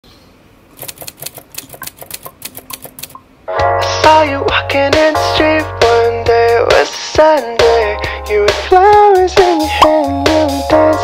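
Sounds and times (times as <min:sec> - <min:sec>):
typing clicks: 0:00.8 - 0:03.2
pop music track: 0:03.5 - 0:11.0.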